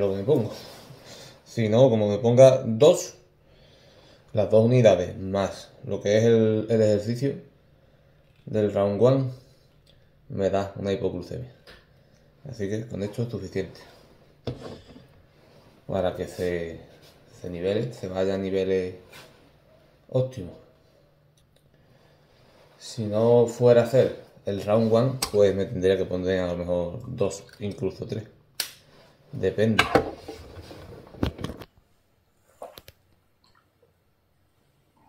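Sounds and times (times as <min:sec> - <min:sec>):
man speaking: 0:00.0 - 0:00.8, 0:15.9 - 0:19.0, 0:22.8 - 0:28.4, 0:29.4 - 0:30.0.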